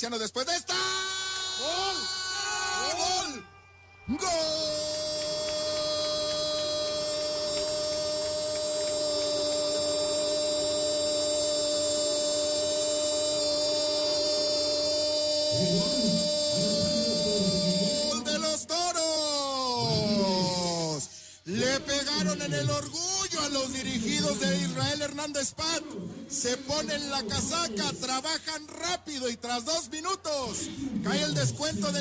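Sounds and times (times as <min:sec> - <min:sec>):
man talking: 0:00.0 - 0:01.2, 0:04.1 - 0:10.7, 0:15.2 - 0:32.0
commentator shouting: 0:00.0 - 0:32.0.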